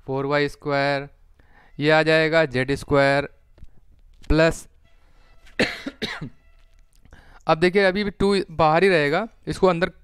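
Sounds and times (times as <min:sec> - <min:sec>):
man coughing: 0:05.6 - 0:06.4.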